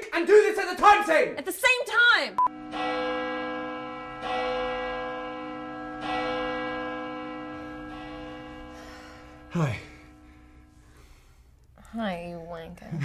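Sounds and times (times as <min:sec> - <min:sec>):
large bell tolling: 0:02.5 - 0:11.1.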